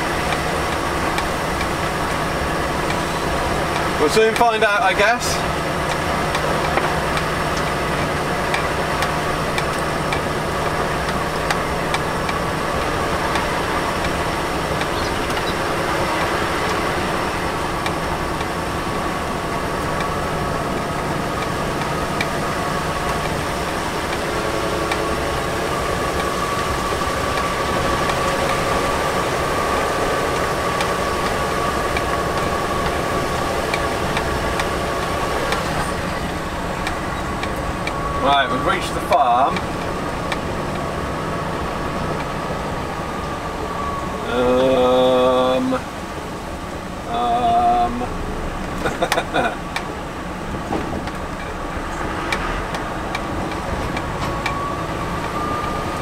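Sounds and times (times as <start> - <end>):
diesel engine running: 0.0 - 56.0
road noise: 0.0 - 56.0.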